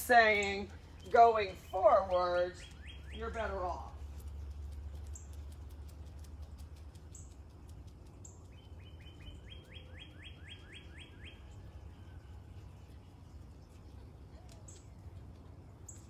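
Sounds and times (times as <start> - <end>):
low steady rumble: 0.0 - 16.0.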